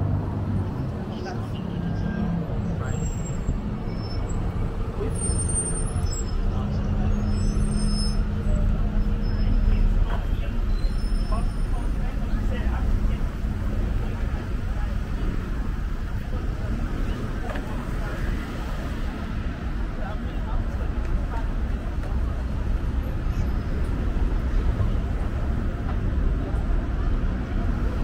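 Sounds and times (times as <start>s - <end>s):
road traffic passing: 0.0s - 28.0s.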